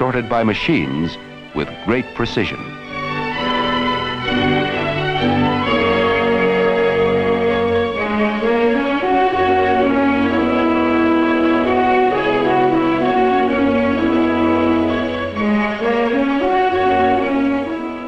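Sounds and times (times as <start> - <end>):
orchestral strings and brass: 0.0 - 18.0.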